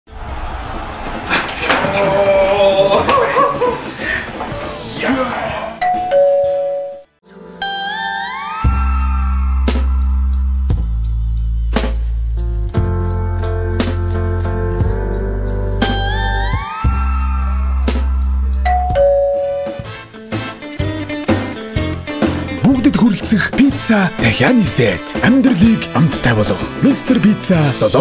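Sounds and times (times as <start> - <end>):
doorbell chime: 5.8 - 7.1, 18.6 - 19.9.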